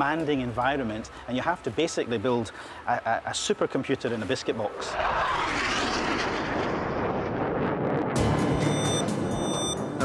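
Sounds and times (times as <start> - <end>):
fighter jet flying overhead: 4.6 - 9.0.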